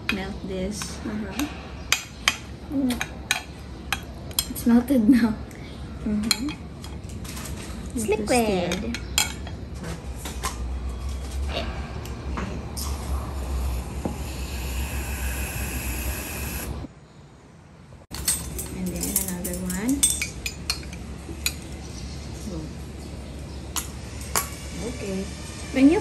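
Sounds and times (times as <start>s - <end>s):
utensils clinking against bowls: 6.2s - 9.7s, 18.1s - 22.1s
steady hiss: 12.7s - 17.1s.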